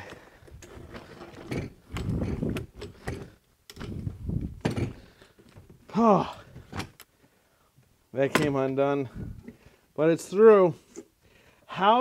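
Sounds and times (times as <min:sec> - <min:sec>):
hand drill gears clicking: 0:00.0 - 0:04.1.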